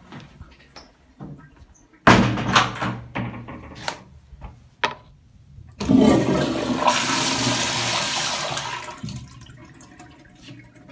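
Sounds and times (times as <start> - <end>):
toilet flush click: 5.8 - 10.9
toilet water rushing: 5.8 - 10.9.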